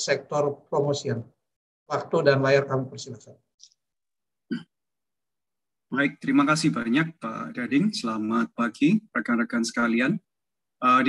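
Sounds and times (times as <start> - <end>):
man speaking: 0.0 - 3.5, 5.9 - 11.0
person's hiccup-like vocal blip: 4.5 - 4.8.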